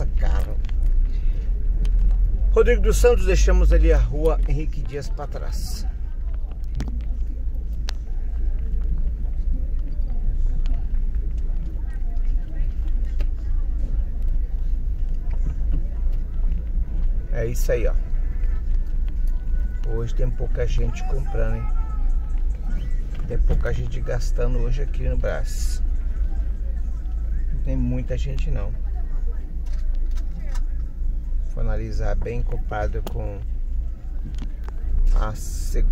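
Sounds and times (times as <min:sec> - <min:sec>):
car engine low rumble: 0:00.0 - 0:35.9
faint voices: 0:00.0 - 0:35.9.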